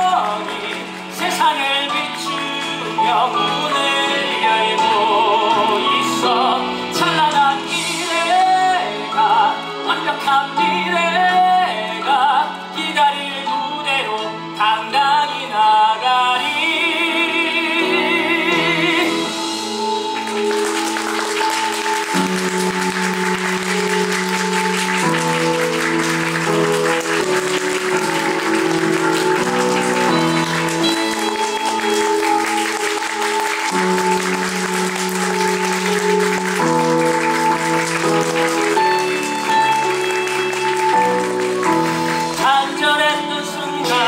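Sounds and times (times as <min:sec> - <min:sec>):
audience applauding: 0:00.0 - 0:08.2, 0:19.0 - 0:44.0
instrumental music sustained chords: 0:16.6 - 0:44.0.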